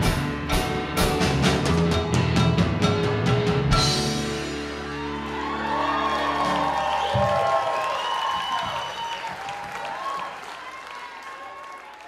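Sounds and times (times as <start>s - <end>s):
audience applause and cheering: 4.1s - 12.0s
high whoops: 4.9s - 12.0s.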